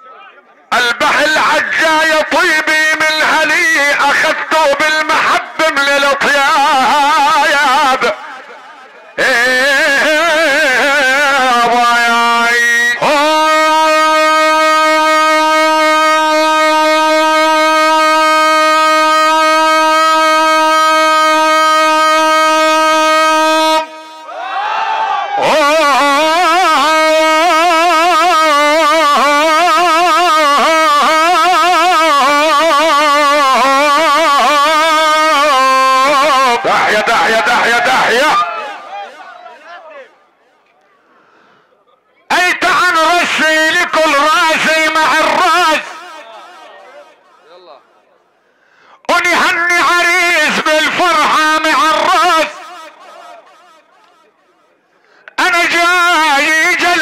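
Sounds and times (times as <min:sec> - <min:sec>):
man singing through microphone: 0:00.7 - 0:08.3, 0:09.2 - 0:23.9, 0:25.4 - 0:38.4, 0:42.3 - 0:46.2.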